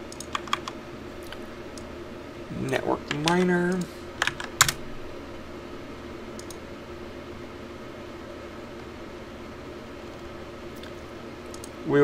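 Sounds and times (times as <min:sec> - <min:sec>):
steady low hum: 0:00.0 - 0:12.0
computer keyboard clacking: 0:00.1 - 0:00.8, 0:02.7 - 0:04.8.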